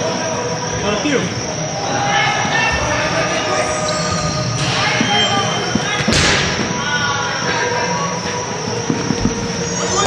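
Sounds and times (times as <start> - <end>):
players' voices: 0.0 - 10.0.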